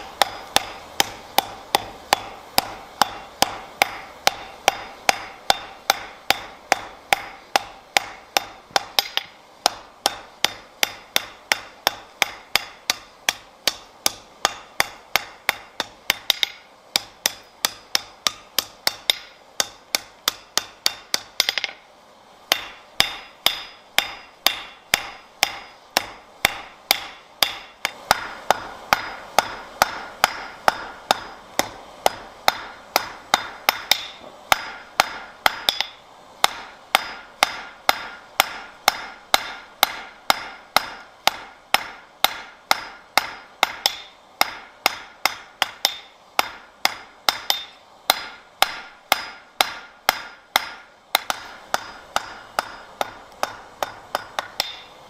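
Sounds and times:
hammer striking metal on anvil: 0.0s - 21.8s, 22.5s - 55.0s.

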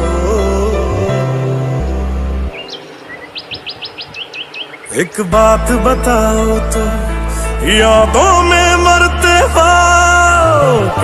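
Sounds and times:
song music: 0.0s - 11.0s
small bird chirping: 2.5s - 5.2s.

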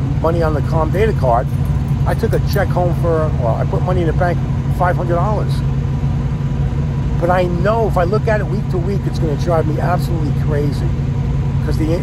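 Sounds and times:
engines idling: 0.0s - 12.0s
man speaking: 0.1s - 5.6s, 7.2s - 11.0s, 11.6s - 12.0s.

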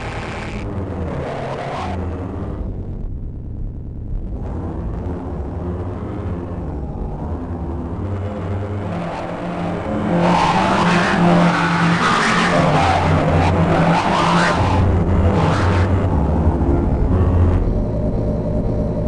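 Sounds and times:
harsh granular synthesizer drone: 0.0s - 19.0s.

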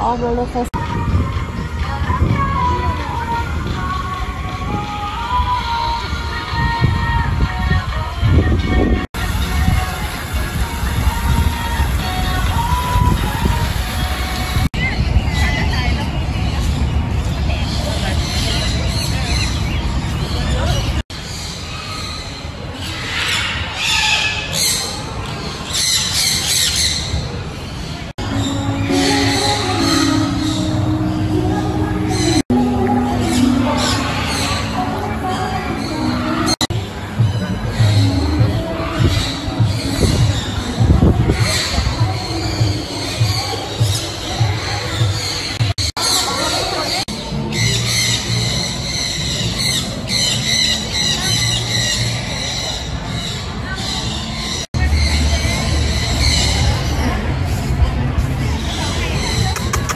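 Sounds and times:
parrots squawking: 21.3s - 27.2s.

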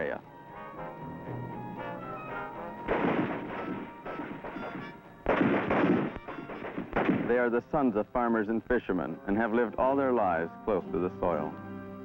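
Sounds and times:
background music: 0.0s - 12.0s
rifle fire bursts: 2.8s - 7.6s.

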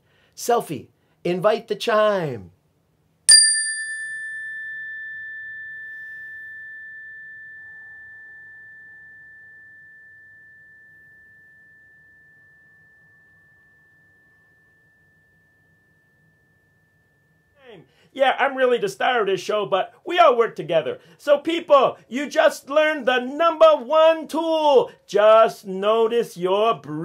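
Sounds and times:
meditation chime ringing: 3.3s - 18.0s.

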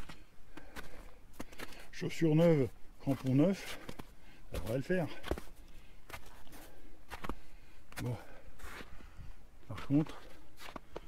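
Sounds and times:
footsteps on snow: 0.0s - 11.0s.

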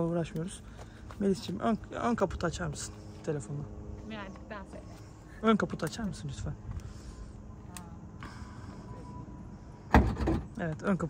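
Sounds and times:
car trunk latch clunk: 9.9s - 10.5s.

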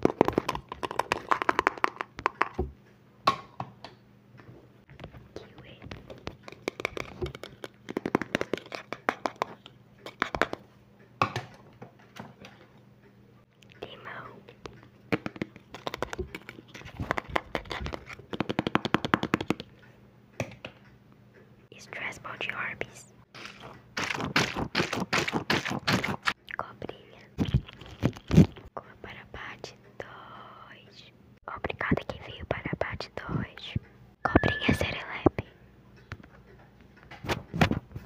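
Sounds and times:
whispering: 5.3s - 6.0s, 13.7s - 14.6s, 21.7s - 23.2s, 26.5s - 27.4s, 28.8s - 35.6s.

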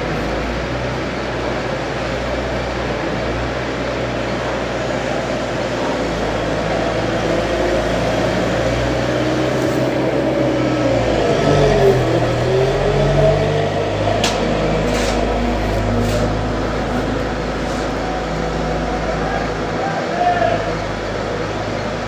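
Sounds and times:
road roller diesel engine running: 0.0s - 22.0s.

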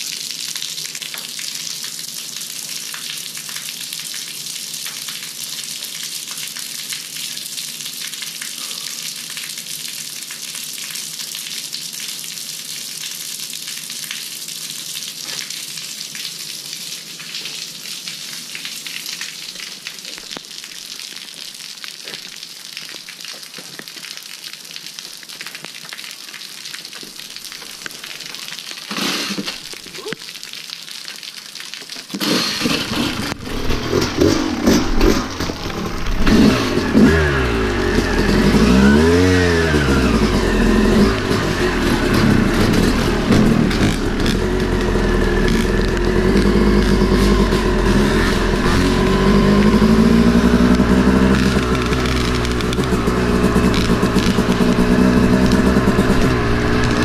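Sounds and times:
steady rain: 0.0s - 57.0s
dirt bike engine revving: 28.9s - 29.6s, 32.2s - 57.0s.

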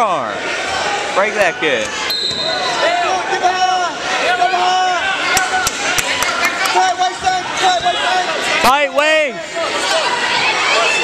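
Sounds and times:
coaches and spectators yelling: 0.0s - 11.0s.

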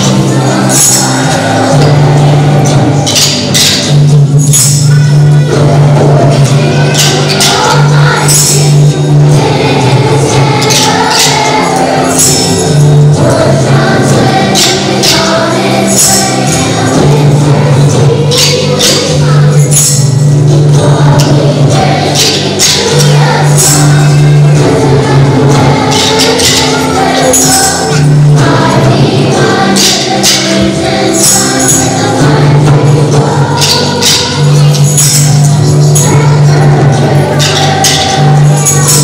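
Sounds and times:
children's choir singing: 0.0s - 39.0s
tambourines jingling: 0.0s - 39.0s.

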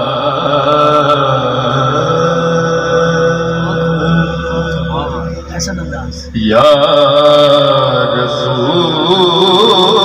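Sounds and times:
man singing into a microphone: 0.0s - 5.6s, 6.2s - 10.0s.

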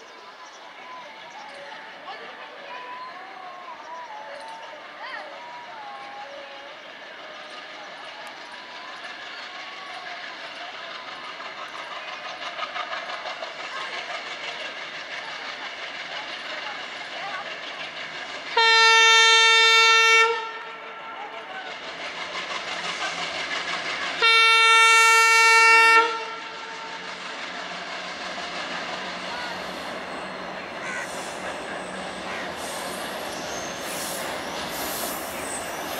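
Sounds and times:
diesel locomotive engine: 0.0s - 35.9s
train wheels clattering: 6.9s - 35.9s
train horn blasts: 18.5s - 21.1s, 24.2s - 27.1s.

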